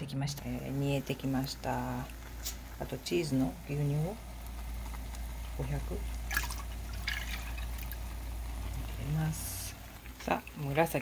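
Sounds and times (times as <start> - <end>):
liquid dripping: 4.3 - 8.8, 9.7 - 11.0
milk splashing into saucepan: 6.1 - 8.6.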